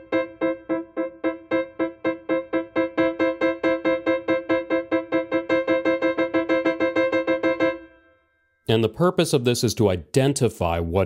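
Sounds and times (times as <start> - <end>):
piano staccato repeated interval: 0.0 - 8.0.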